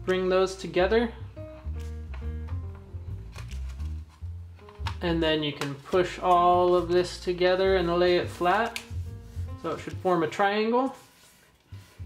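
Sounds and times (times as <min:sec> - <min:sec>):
background music with steady bass: 0:00.0 - 0:12.0
paper crinkling: 0:03.2 - 0:05.0.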